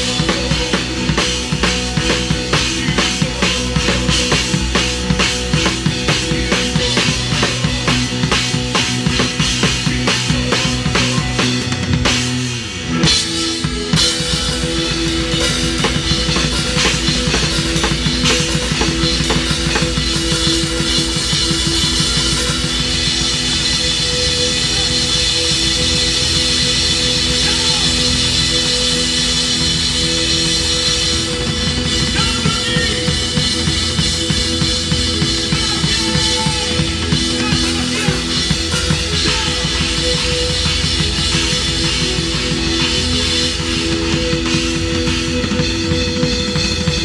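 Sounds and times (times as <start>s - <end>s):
drum kit beat: 0.0s - 47.0s
rock band playing: 0.0s - 47.0s.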